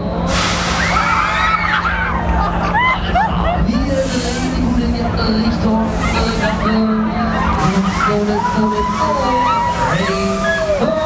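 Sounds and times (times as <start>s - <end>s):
crowd noise: 0.0s - 11.0s
spinning fairground ride: 0.0s - 11.0s.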